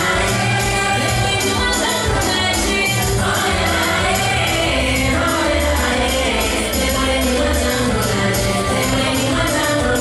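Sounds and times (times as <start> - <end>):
group singing over music: 0.0 - 10.0.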